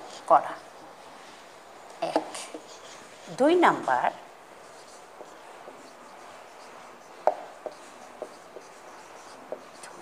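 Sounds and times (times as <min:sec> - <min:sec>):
marker pen writing on whiteboard: 0:00.0 - 0:10.0.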